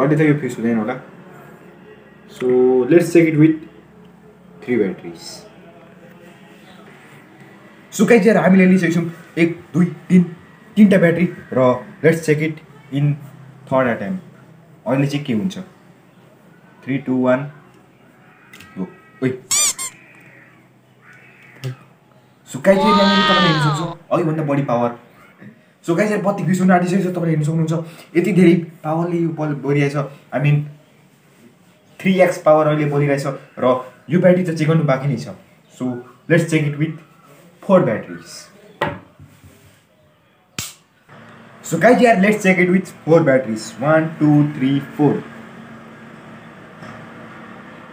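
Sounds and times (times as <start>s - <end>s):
high-pitched vocal squeal: 19.5s - 20.1s, 22.7s - 24.0s
sharp click: 40.6s - 40.8s.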